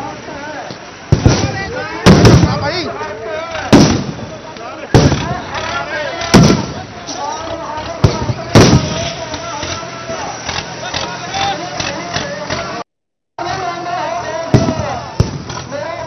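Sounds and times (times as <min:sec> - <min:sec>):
crowd of men shouting: 0:01.3 - 0:12.8, 0:13.4 - 0:16.0.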